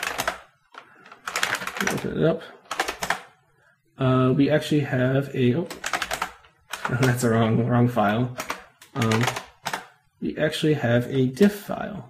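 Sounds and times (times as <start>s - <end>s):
keyboard typing: 0.0s - 3.4s, 5.6s - 7.4s, 8.0s - 10.0s.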